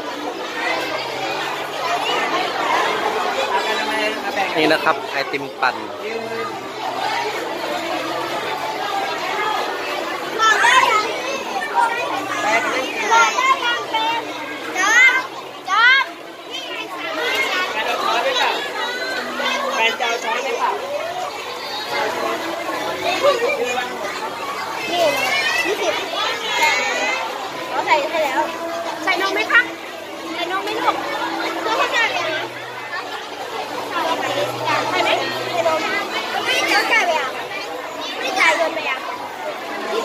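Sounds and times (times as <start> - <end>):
children talking and calling out: 0.0 - 40.0
people chattering: 0.0 - 40.0.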